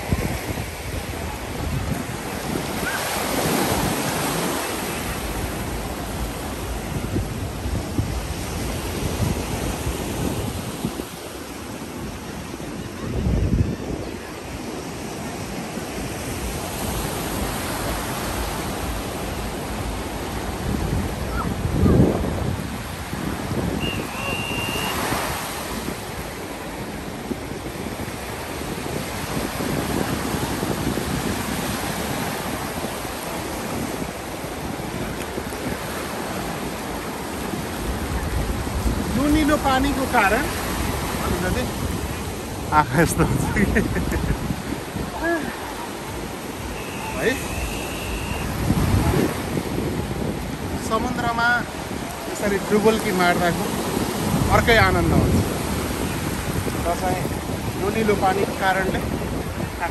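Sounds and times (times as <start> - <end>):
ocean surf breaking: 0.0 - 59.9
wind gusting on microphone: 0.0 - 59.9.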